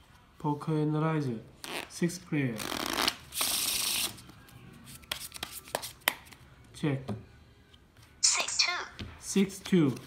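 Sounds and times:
playing cards clicking and tapping: 0:05.1 - 0:06.4.

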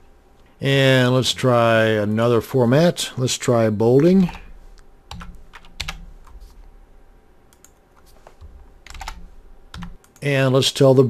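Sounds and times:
computer keyboard typing: 0:05.1 - 0:06.5, 0:07.5 - 0:10.2.

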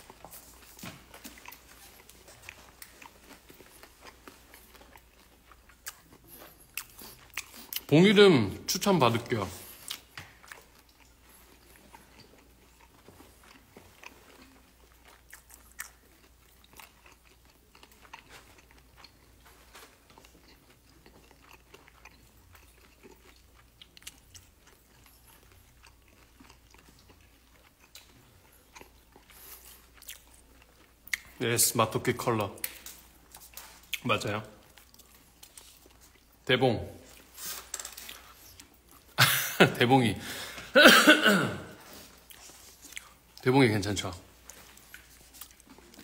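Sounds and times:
person chewing crunchy food: 0:00.0 - 0:07.9, 0:09.2 - 0:31.4, 0:32.6 - 0:39.2, 0:41.7 - 0:43.5, 0:44.2 - 0:46.0
man talking: 0:07.9 - 0:09.6, 0:31.4 - 0:32.7, 0:34.0 - 0:34.6, 0:36.5 - 0:37.1, 0:39.6 - 0:41.7, 0:43.4 - 0:44.3.

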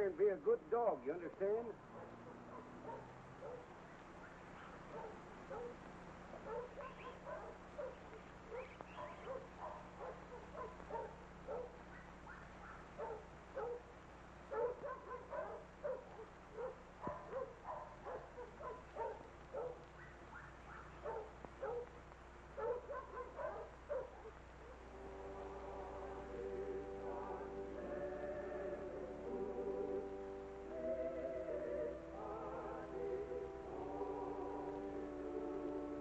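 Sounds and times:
dog barking and yelping: 0:01.9 - 0:22.0, 0:22.6 - 0:24.8.

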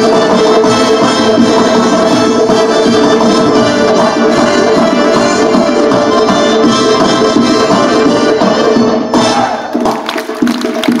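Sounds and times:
live folk dance music: 0:00.0 - 0:11.0.

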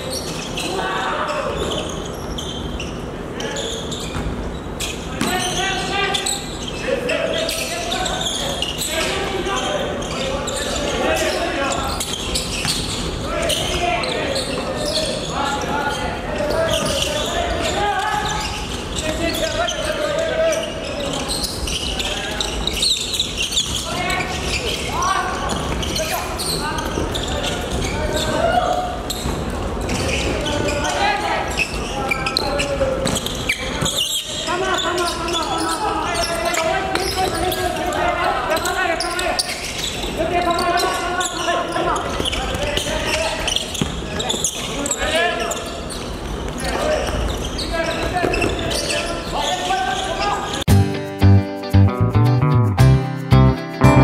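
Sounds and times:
players calling and shouting: 0:00.0 - 0:54.0.

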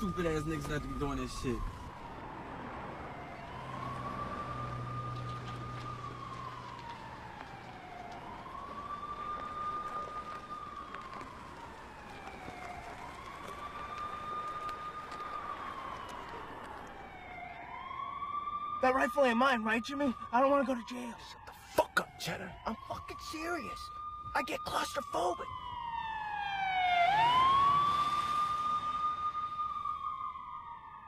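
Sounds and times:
police siren wailing: 0:00.0 - 0:31.0.

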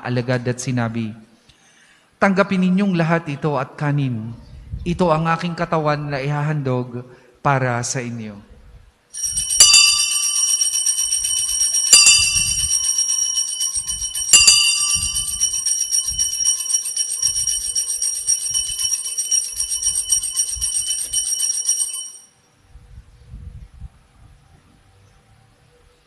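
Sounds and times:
small bells jingling: 0:09.2 - 0:22.3.

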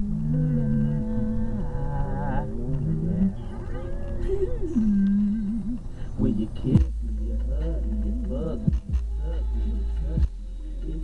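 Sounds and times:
person singing wordless melody: 0:00.0 - 0:11.0
steady low rumble: 0:00.0 - 0:11.0.

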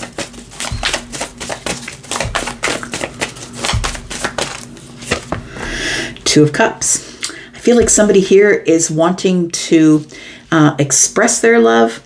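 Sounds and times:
cards being shuffled: 0:00.0 - 0:05.4.

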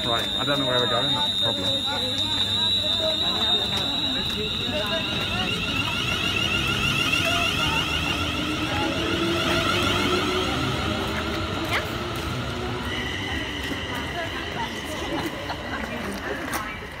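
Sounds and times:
carriages rumbling past: 0:00.0 - 0:17.0
electric train whine: 0:00.0 - 0:17.0.

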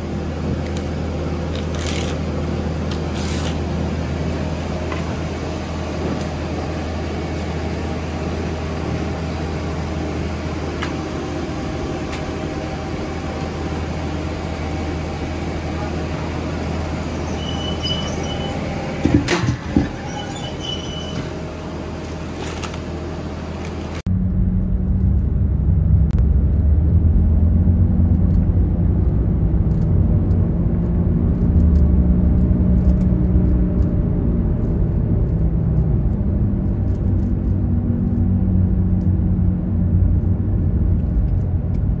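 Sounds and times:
car driving in traffic: 0:00.0 - 0:42.0
workshop machinery hum: 0:00.0 - 0:42.0.

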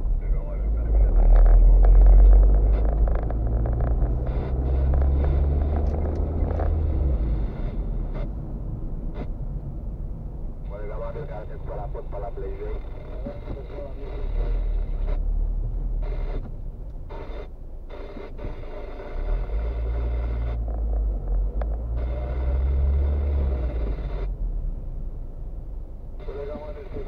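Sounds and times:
car engine and road rumble: 0:00.0 - 0:27.0.

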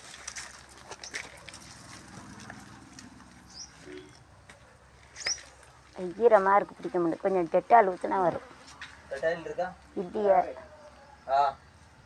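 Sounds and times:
dry twigs clicking and rustling: 0:00.0 - 0:06.0.

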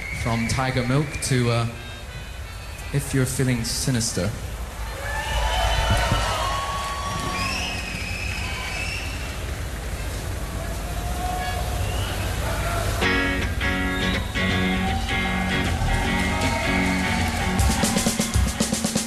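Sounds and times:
crowd voices and whistles: 0:00.0 - 0:03.2, 0:04.8 - 0:19.0
band playing drums and guitar: 0:13.0 - 0:19.0.

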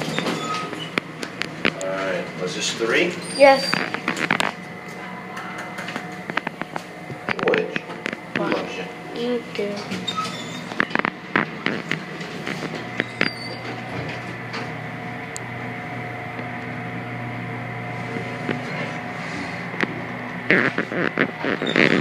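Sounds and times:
elevator hum with faint whine: 0:00.0 - 0:22.0.

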